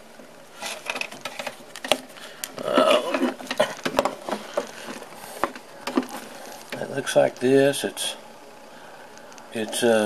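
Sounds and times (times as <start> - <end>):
handling clicks and rustles: 0.6 - 7.5.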